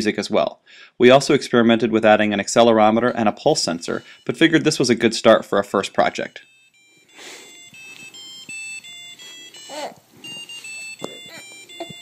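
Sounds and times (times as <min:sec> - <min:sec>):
piezo buzzer beeping a tune: 0:03.9 - 0:04.9, 0:06.1 - 0:12.0.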